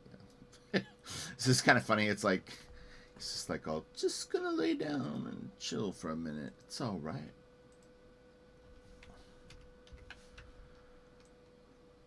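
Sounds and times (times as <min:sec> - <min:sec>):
faint steady hum: 0:00.0 - 0:12.0
computer mouse clicks: 0:09.0 - 0:11.6.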